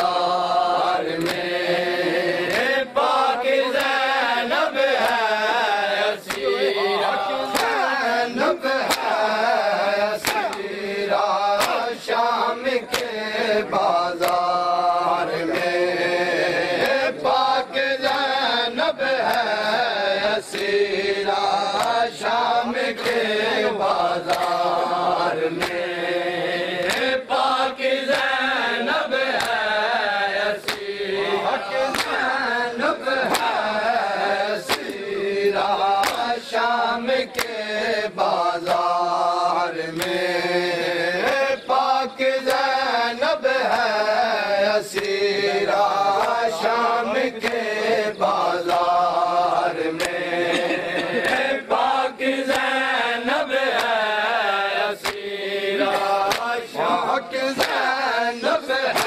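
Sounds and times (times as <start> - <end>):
man chanting a lament: 0.0 - 59.0
hand slaps on chest: 1.1 - 1.5, 3.8 - 4.0, 5.0 - 5.3, 6.2 - 6.5, 7.5 - 7.8, 8.8 - 9.2, 10.2 - 10.7, 11.5 - 12.0, 12.9 - 13.2, 14.2 - 14.5, 18.0 - 18.3, 19.2 - 19.6, 21.7 - 22.2, 23.0 - 23.2, 24.2 - 24.8, 25.5 - 25.8, 26.8 - 27.2, 29.3 - 29.7, 30.6 - 30.9, 31.8 - 32.3, 33.2 - 33.6, 34.6 - 36.5, 37.2 - 37.6, 39.9 - 40.3, 41.2 - 41.6, 42.4 - 42.8, 44.9 - 45.2, 46.1 - 46.5, 47.4 - 47.7, 49.9 - 51.6, 52.5 - 52.8, 53.7 - 54.1, 55.0 - 56.8, 57.6 - 57.9
hands slapping chest: 1.1 - 1.6, 2.4 - 2.8, 3.7 - 4.0, 5.0 - 5.3, 6.2 - 6.5, 7.4 - 7.9, 8.6 - 9.2, 10.0 - 13.2, 13.8 - 14.6, 15.4 - 15.9, 16.7 - 17.4, 18.0 - 18.4, 19.2 - 26.0, 26.7 - 28.5, 29.2 - 29.9, 30.6 - 40.3, 41.2 - 42.9, 43.6 - 44.0, 44.9 - 45.2, 45.8 - 46.8, 47.4 - 47.7, 48.3 - 52.9, 53.7 - 54.2, 55.0 - 58.0, 58.8 - 59.0.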